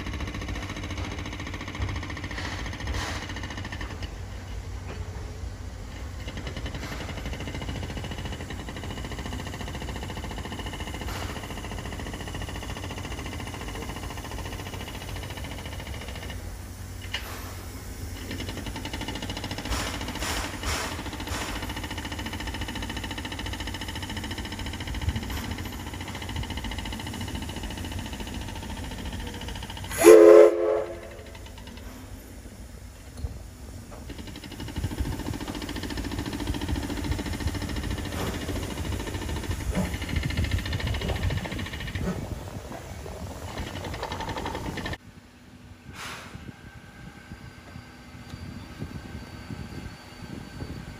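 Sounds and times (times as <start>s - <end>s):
steam locomotive rumble: 0.0s - 50.9s
faint steam hiss: 6.9s - 45.0s, 45.8s - 47.3s
steam whistle blast: 29.9s - 31.4s.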